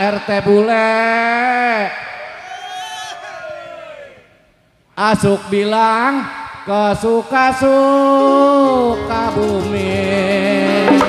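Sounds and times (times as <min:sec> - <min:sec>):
amplified man singing: 0:07.3 - 0:11.0
accompaniment with sliding pitches: 0:08.6 - 0:11.0.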